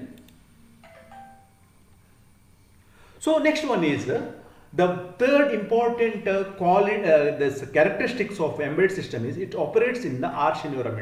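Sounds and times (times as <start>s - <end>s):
soft ringing tone: 0.5s - 1.9s.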